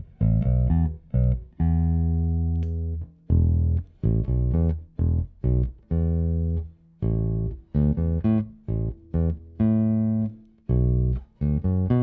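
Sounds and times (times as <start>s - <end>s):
plucked electric bass notes: 0.0s - 12.0s.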